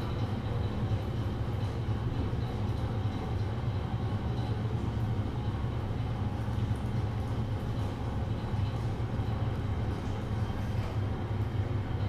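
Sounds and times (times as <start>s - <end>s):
elevator low rumble: 0.0s - 12.0s.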